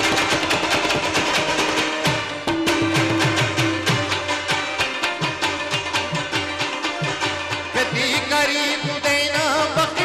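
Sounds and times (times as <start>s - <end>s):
rabab strummed fast: 0.0s - 10.0s
tabla: 0.0s - 10.0s.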